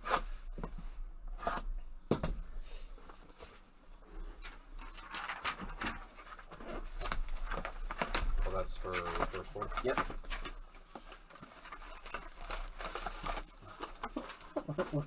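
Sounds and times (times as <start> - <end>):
plastic shrink wrap tearing: 6.7 - 15.0.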